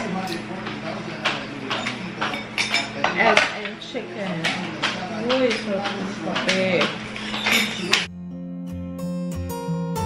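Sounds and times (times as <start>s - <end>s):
cutlery clinking on a plate: 0.2s - 3.8s, 4.4s - 8.1s.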